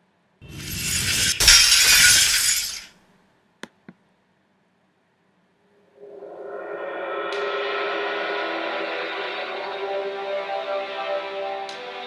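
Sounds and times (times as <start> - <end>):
glass breaking crash: 0.5 - 2.9
rush of noise: 6.0 - 10.7.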